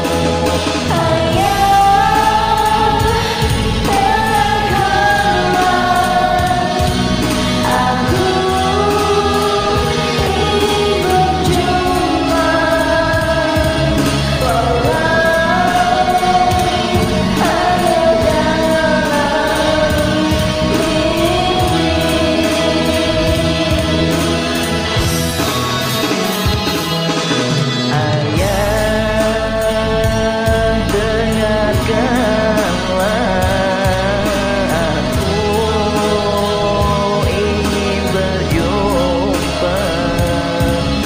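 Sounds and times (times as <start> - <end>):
woman singing slow ballad: 0.0 - 25.1, 27.9 - 41.0
karaoke backing track: 0.0 - 41.0.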